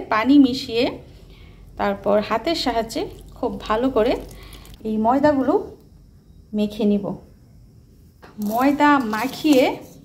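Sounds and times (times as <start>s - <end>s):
woman speaking: 0.0s - 1.0s, 1.8s - 5.8s, 6.5s - 7.3s, 8.4s - 9.9s
water trickling into a bowl: 2.5s - 5.1s.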